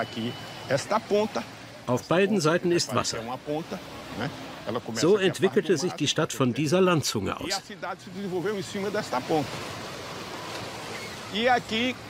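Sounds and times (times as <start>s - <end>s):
waves on rocky shore: 0.0s - 12.0s.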